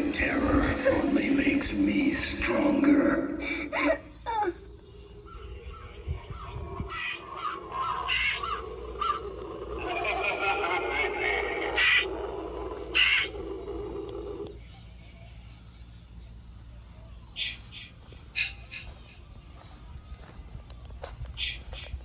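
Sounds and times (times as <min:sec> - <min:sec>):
wordless voice-like sound: 0:00.0 - 0:04.0
squawking bird-like calls: 0:03.4 - 0:14.4, 0:17.4 - 0:19.0.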